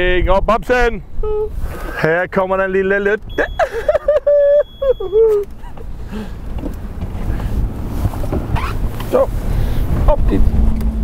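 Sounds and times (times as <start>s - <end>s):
wind noise: 0.0s - 2.0s, 5.2s - 11.0s
outboard motor rumbling: 1.1s - 11.0s.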